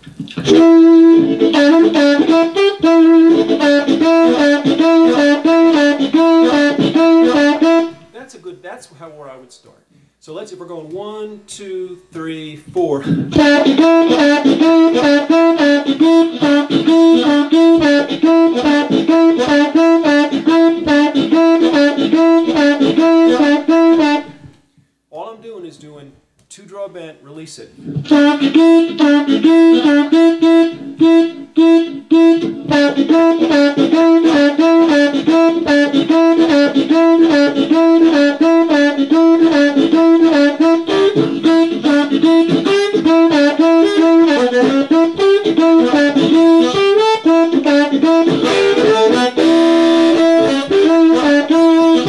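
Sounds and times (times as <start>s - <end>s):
blues harmonica: 0.2s - 8.2s, 13.0s - 25.0s, 27.8s - 52.0s.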